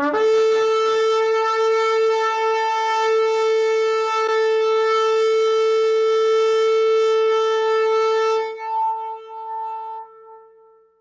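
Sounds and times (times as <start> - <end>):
shofar blast: 0.0 - 10.7.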